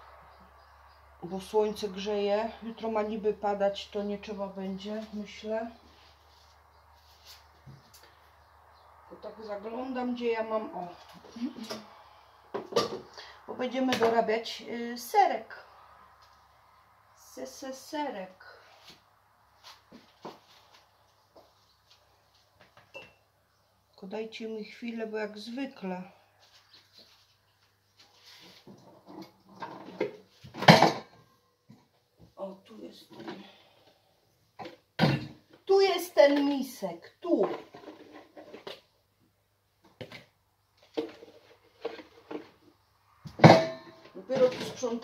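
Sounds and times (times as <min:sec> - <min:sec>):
bowls and containers clattering: 0:28.7 - 0:31.2, 0:43.3 - 0:44.9
bowl clattering among pots: 0:28.8 - 0:31.2, 0:43.3 - 0:45.0
kitchen things clicking and knocking: 0:43.3 - 0:45.0.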